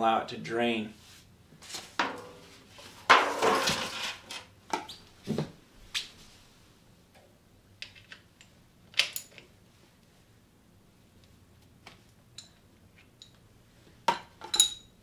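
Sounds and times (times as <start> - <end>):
foil pans clattering and crinkling: 1.7 - 4.5.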